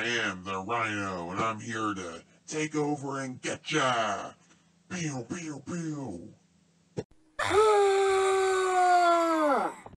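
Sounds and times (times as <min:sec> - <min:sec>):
long loud scream: 0:07.4 - 0:09.9.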